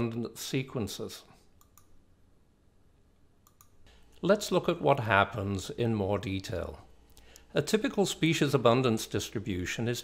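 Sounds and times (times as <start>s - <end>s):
soft clicks: 1.6s - 2.0s, 3.2s - 4.2s.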